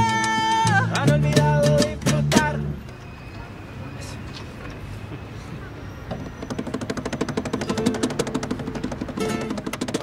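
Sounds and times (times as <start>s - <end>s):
cajon beats: 0.0s - 2.8s, 6.2s - 10.0s
acoustic guitar strummed fast: 6.6s - 10.0s.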